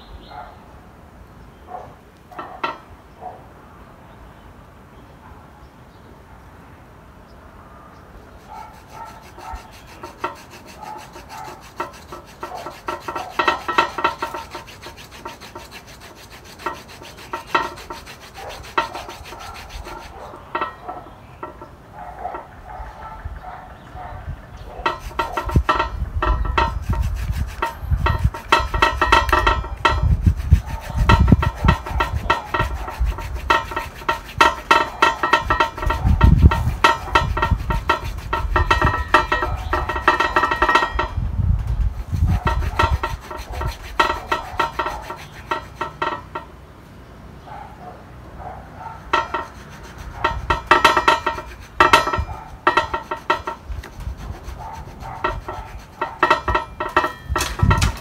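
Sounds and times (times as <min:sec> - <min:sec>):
gloved hands scraping bark: 0:08.4 - 0:22.5, 0:24.8 - 0:46.5, 0:49.0 - 0:58.0.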